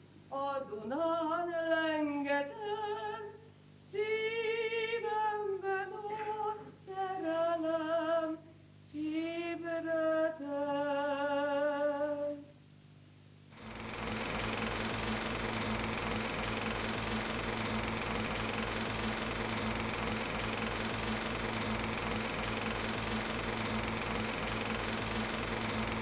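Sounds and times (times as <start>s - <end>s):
film projector whirring and clattering: 13.5s - 26.0s.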